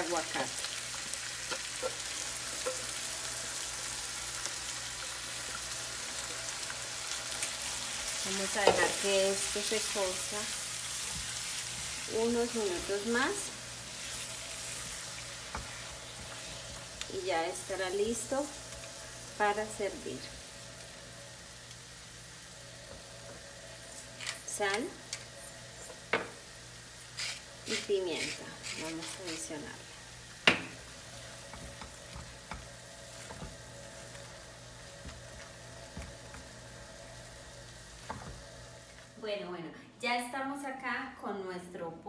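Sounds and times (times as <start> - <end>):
chicken sizzling in a frying pan: 0.0 - 39.2.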